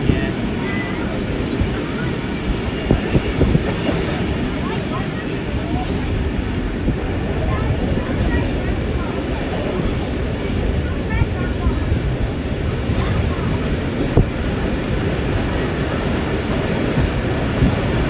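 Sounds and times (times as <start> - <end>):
train wheels rumbling on rails: 0.0 - 18.0.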